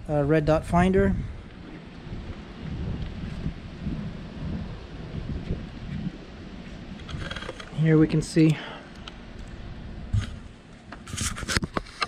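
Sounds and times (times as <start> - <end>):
wind buffeting microphone: 0.0 - 8.3.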